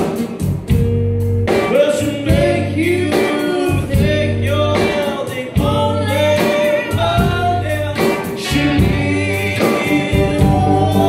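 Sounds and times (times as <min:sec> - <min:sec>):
live rock band playing: 0:00.0 - 0:11.0
woman singing lead: 0:01.7 - 0:11.0.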